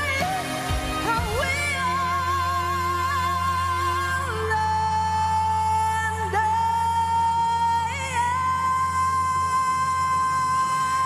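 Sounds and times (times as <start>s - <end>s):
band accompaniment: 0.0s - 2.0s
woman singing long high note: 0.0s - 11.0s.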